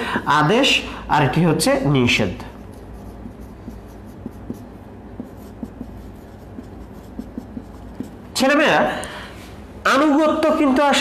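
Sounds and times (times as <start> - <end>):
person speaking: 0.0 - 9.2
marker pen writing on whiteboard: 2.4 - 8.5.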